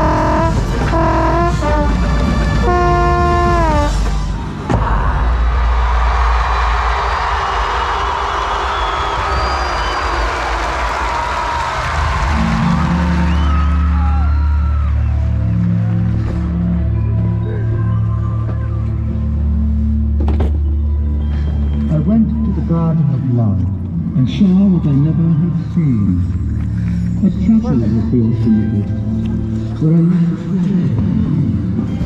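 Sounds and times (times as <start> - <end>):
brass chord with downward fall: 0.0 - 4.4.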